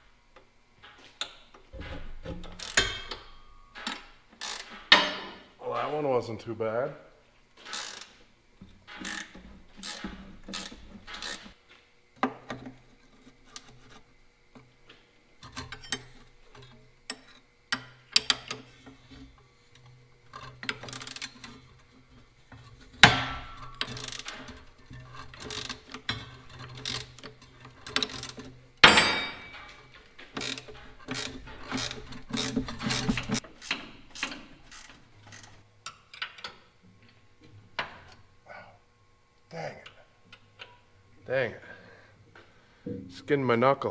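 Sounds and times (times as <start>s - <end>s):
ratchet wrench clicking: 4.4s - 4.7s, 7.7s - 8.1s
low steady hum: 12.2s - 43.9s
metal clanks: 22.6s - 34.5s.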